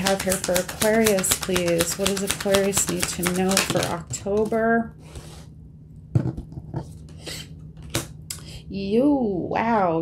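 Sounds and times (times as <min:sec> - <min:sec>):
cards clicking on table: 0:00.0 - 0:04.5
cards rustling: 0:00.0 - 0:04.6.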